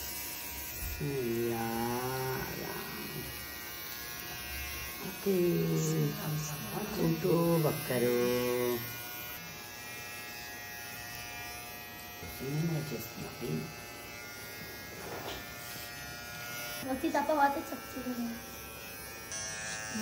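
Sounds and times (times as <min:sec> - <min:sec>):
electric hair clipper buzzing: 0:00.0 - 0:20.0.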